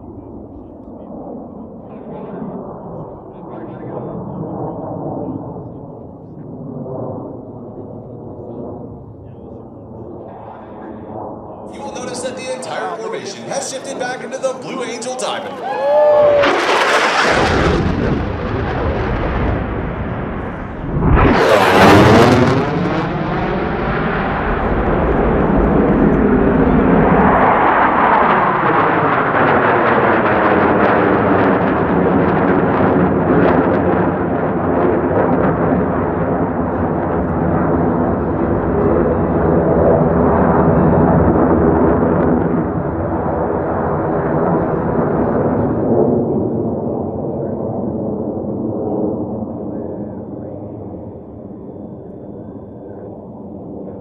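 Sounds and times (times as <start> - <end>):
jet engine roar: 0.0 - 54.0
jet passing low and fast: 0.0 - 54.0.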